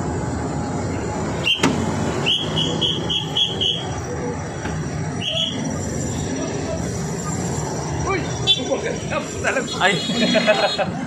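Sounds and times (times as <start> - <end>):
traffic rumble: 0.0 - 11.0
whistle short high toots: 1.4 - 3.9, 5.2 - 5.7.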